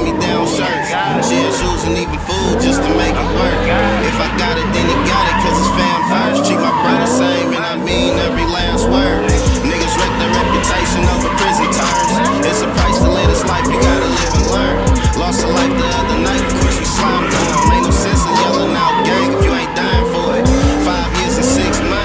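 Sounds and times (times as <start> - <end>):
car engine revving: 0.0 - 22.0
hip-hop music with deep bass: 0.0 - 22.0
tyres squealing: 0.0 - 22.0.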